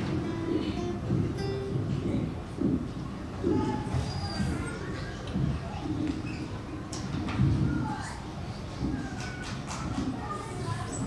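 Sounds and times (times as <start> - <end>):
classical guitar plucked slowly: 0.0 - 2.8.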